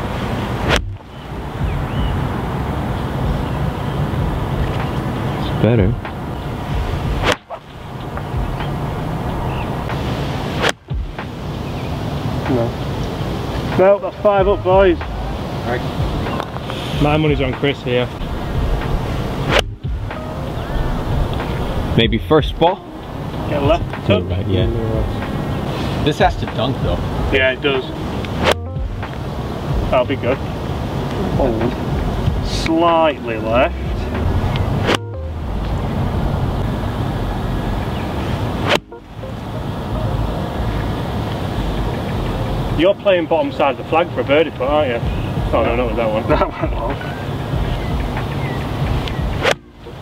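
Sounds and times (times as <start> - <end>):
wind rumble on microphone: 0.0 - 32.9, 33.6 - 38.7, 44.7 - 50.0
golf club striking ball: 0.6 - 1.2, 7.2 - 8.8, 10.6 - 11.3, 18.8 - 20.4, 28.2 - 29.2, 34.2 - 35.2, 38.6 - 39.4, 49.0 - 49.9.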